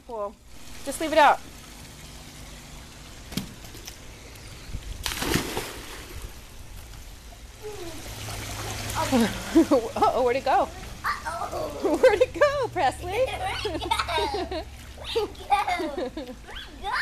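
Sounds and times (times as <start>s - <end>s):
water churning and sloshing: 0.0s - 17.0s
body splashing into pool: 5.0s - 6.4s
voices: 8.8s - 17.0s.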